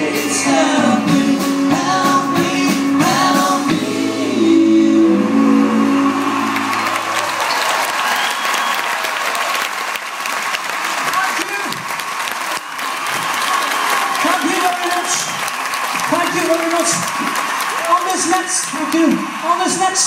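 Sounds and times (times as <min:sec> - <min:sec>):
audience applauding: 0:05.8 - 0:20.0.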